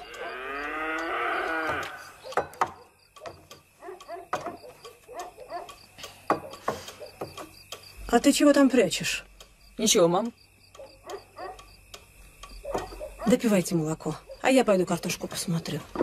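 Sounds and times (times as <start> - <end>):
cow mooing: 0.0 - 2.2.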